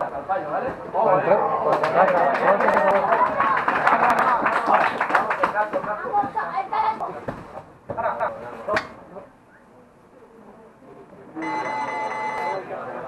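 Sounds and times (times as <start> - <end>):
electronic timer beep: 11.4 - 12.6.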